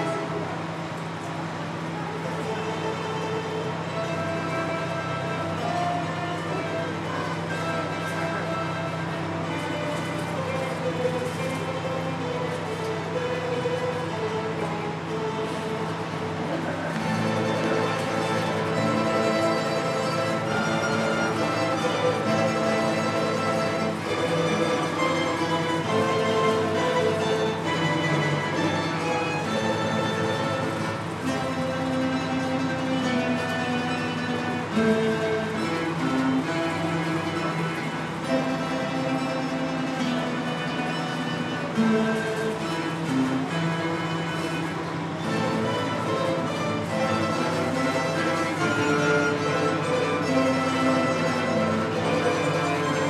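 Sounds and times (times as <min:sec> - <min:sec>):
mandolin ensemble playing: 0:00.0 - 0:53.0.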